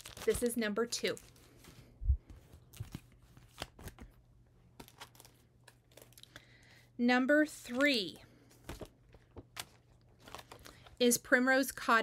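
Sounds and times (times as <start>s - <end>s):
plastic and paper crinkling: 0.0s - 4.2s, 4.8s - 6.5s, 7.6s - 11.1s.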